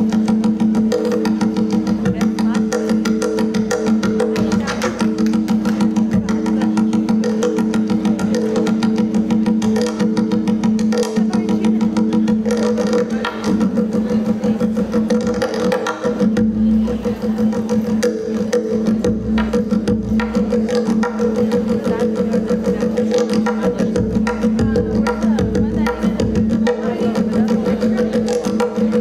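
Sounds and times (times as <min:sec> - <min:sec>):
goblet drum played with fingers: 0:00.0 - 0:29.0.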